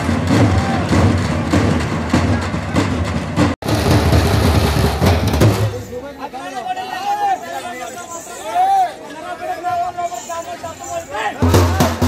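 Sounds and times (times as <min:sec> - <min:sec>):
frame drums beaten fast: 0:00.0 - 0:05.9, 0:11.4 - 0:12.0.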